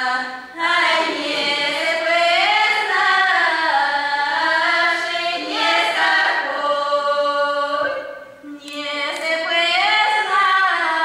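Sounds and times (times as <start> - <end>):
girls singing a cappella: 0.0 - 11.0.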